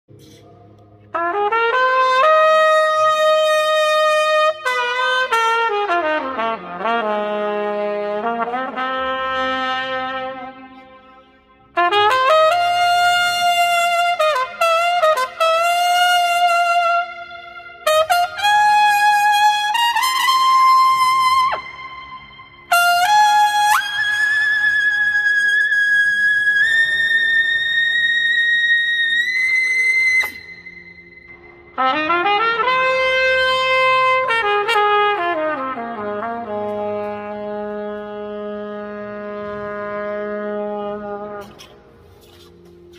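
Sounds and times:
trumpet playing slurred notes: 0.1s - 42.9s.

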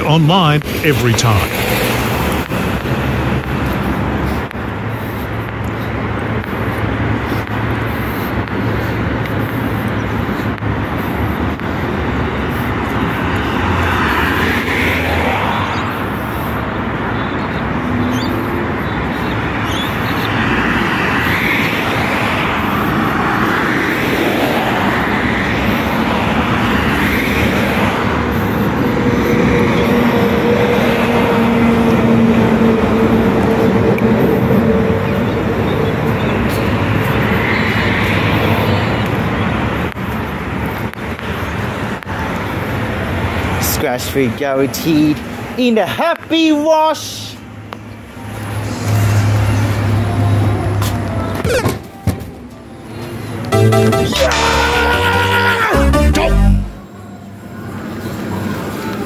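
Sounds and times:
vehicles passing by: 0.0s - 59.0s.

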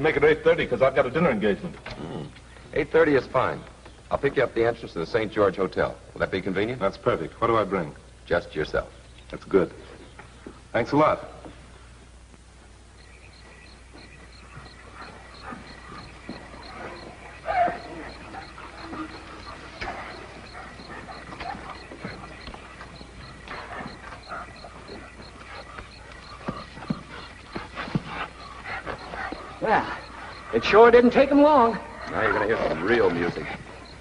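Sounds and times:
hounds whining and yipping: 13.0s - 34.0s.

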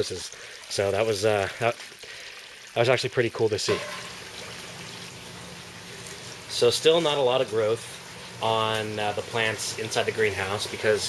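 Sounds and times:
running water trickling: 0.0s - 11.0s.

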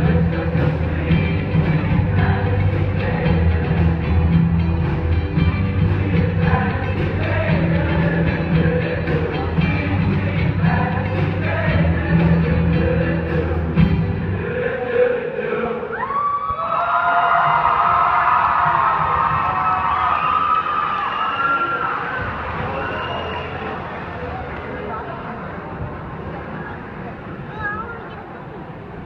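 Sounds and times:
live band music: 0.0s - 14.2s
crowd cheering: 15.6s - 25.4s.

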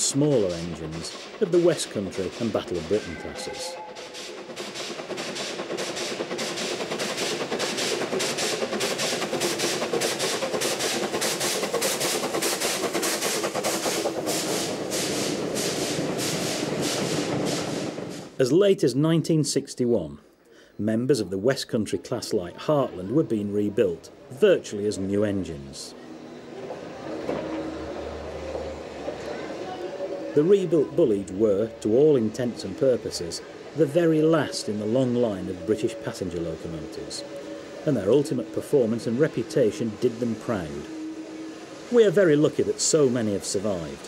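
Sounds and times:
steam locomotive chuffing: 0.0s - 18.5s, 23.4s - 44.0s.

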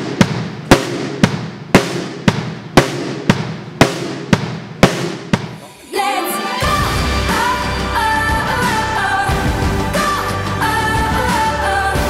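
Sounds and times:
sparse drum beat: 0.0s - 5.7s.

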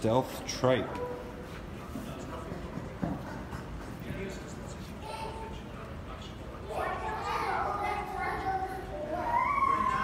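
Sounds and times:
low background murmur: 0.0s - 10.0s
child calling out: 9.0s - 10.0s.

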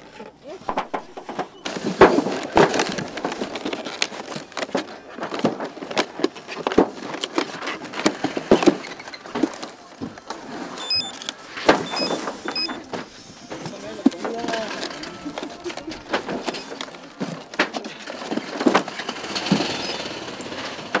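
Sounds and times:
cardboard boxes knocking: 0.7s - 10.4s, 11.6s - 19.7s
background voices: 9.3s - 19.0s
barcode scanner beeps: 10.8s - 12.9s.

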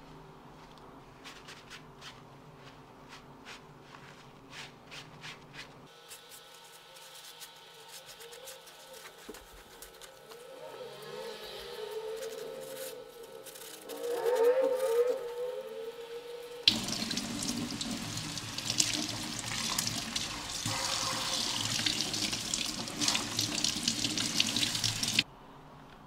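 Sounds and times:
tap water rushing into steel sink: 16.7s - 25.2s.

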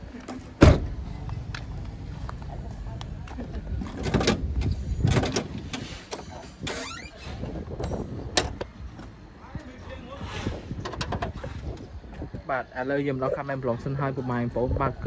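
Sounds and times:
car door slamming: 0.6s - 1.0s
wind rumble on microphone: 3.1s - 12.8s, 14.4s - 15.0s.

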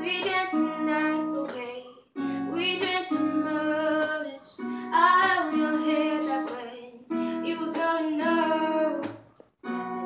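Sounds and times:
girl singing: 0.0s - 10.0s
strummed acoustic guitar: 0.0s - 10.0s.

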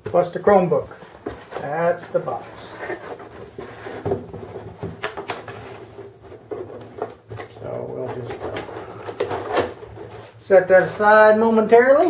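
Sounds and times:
cardboard scraping and rustling: 0.8s - 11.0s.

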